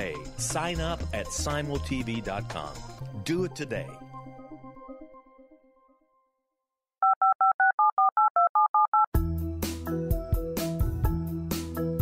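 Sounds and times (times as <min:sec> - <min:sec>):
telephone keypad beeps: 0:07.0 - 0:09.1.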